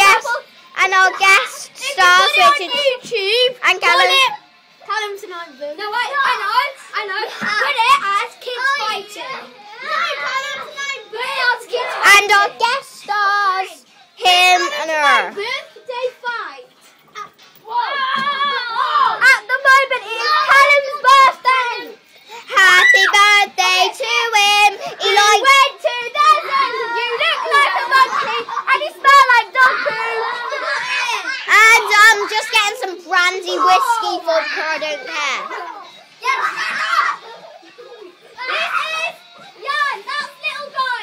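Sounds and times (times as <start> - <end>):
children playing: 0.0 - 41.0
child singing: 19.2 - 30.8.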